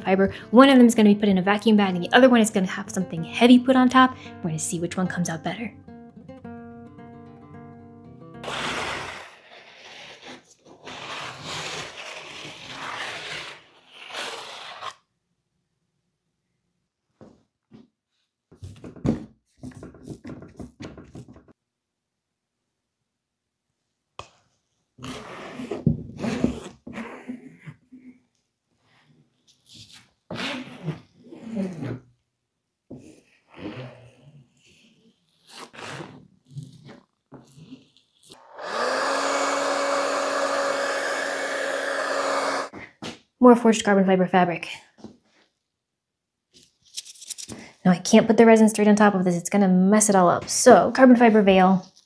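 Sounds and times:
plastic spreader scraping: 8.4 - 15.0
heat gun blower whooshing: 38.4 - 42.7.

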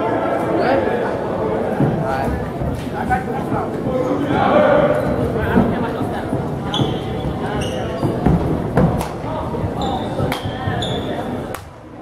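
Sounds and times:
crowd chatter: 0.0 - 12.0
high squeak: 9.8 - 11.4.

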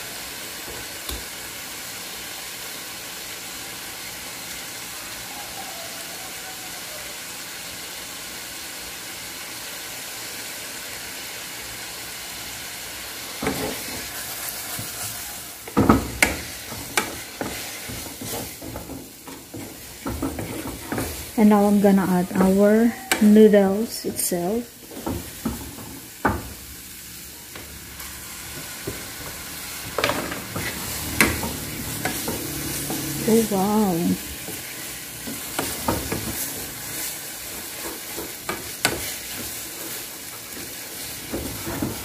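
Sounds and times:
vegetables sizzling in frying pan: 0.0 - 42.0
wooden spatula scraping pan: 13.4 - 23.5, 28.6 - 42.0.

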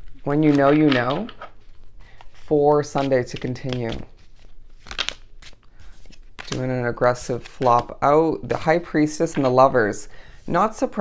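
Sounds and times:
cards shuffling: 0.0 - 9.7.

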